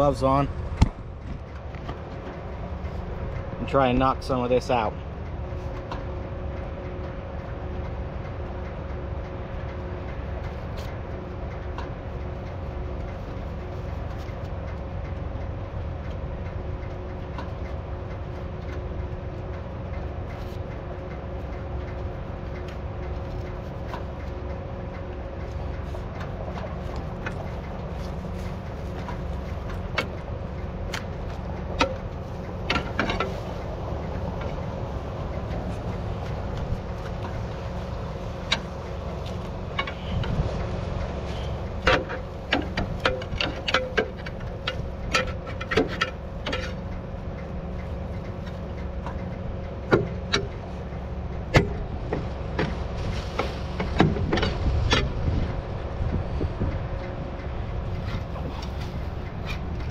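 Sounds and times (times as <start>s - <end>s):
tractor engine idling: 0.0s - 59.9s.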